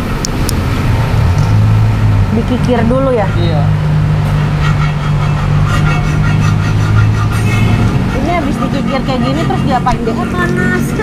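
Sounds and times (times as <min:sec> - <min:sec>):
engine idling hum: 0:00.0 - 0:11.0
hand file rasping on metal: 0:02.8 - 0:11.0.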